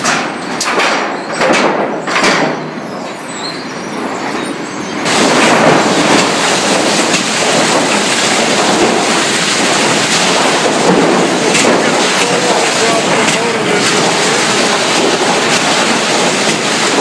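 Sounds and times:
lumber on chain conveyors: 0:00.0 - 0:17.0
sawmill machinery clatter: 0:00.0 - 0:17.0.

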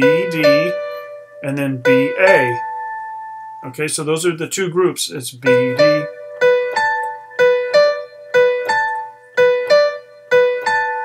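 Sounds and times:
slow piano melody: 0:00.0 - 0:03.8, 0:05.4 - 0:11.0.

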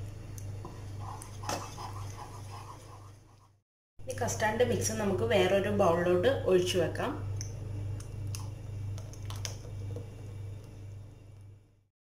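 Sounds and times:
steady low hum: 0:00.0 - 0:11.9
wooden spoon stirring custard: 0:00.4 - 0:03.6.

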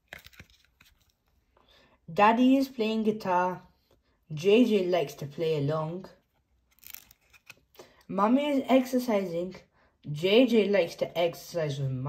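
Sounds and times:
cardboard book opening: 0:00.0 - 0:01.4, 0:06.3 - 0:07.7.

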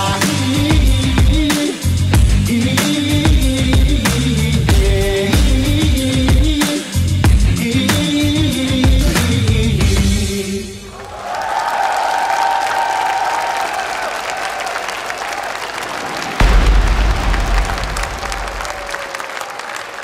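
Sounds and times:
dance music: 0:00.0 - 0:10.7
audience applauding and cheering: 0:10.9 - 0:20.0
low rumble: 0:16.4 - 0:18.9.

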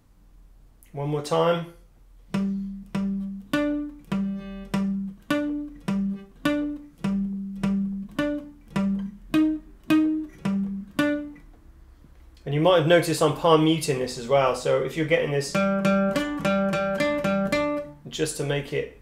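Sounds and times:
palm-muted acoustic guitar riff: 0:02.3 - 0:11.5, 0:15.5 - 0:18.1.

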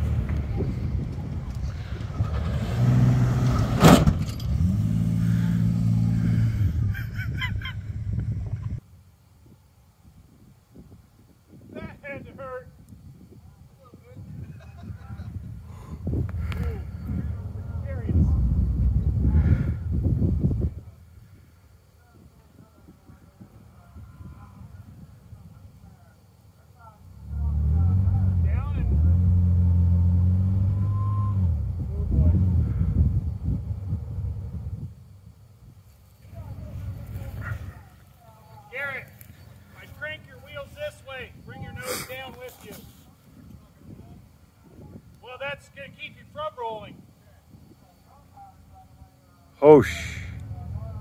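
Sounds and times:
truck engine straining under load: 0:00.0 - 0:08.8, 0:15.3 - 0:20.7, 0:27.2 - 0:35.0
people talking: 0:11.7 - 0:12.7, 0:13.4 - 0:19.7, 0:22.0 - 0:29.1, 0:31.9 - 0:32.8, 0:36.2 - 0:51.0.

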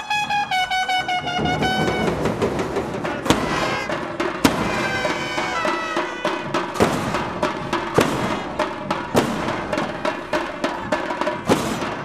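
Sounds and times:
held trumpet notes: 0:00.0 - 0:02.4, 0:03.3 - 0:06.7
drumming: 0:00.2 - 0:12.0
sharp loud strikes: 0:01.3 - 0:12.0.

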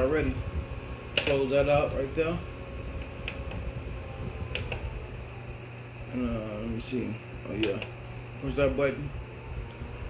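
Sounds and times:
small fan humming: 0:00.0 - 0:10.0
sharp clicks from handling: 0:01.1 - 0:01.4.

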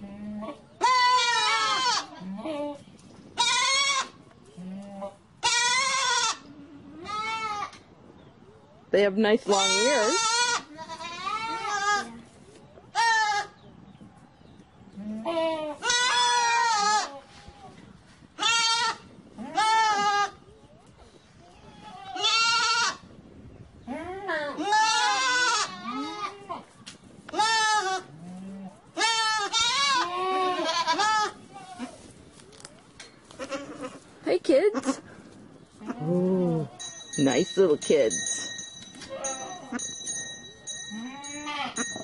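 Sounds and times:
young goats bleating: 0:00.0 - 0:02.8, 0:03.4 - 0:07.8, 0:09.5 - 0:12.3, 0:12.9 - 0:13.6, 0:14.9 - 0:20.4, 0:21.4 - 0:23.1, 0:23.8 - 0:32.1, 0:33.3 - 0:36.8, 0:39.1 - 0:39.9, 0:40.9 - 0:42.0.

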